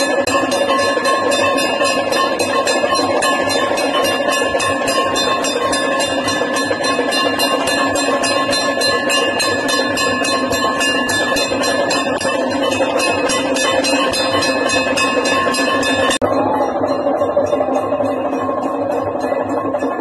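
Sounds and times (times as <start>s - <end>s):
bells ringing fast: 0.0s - 20.0s
metallic ring: 0.0s - 20.0s.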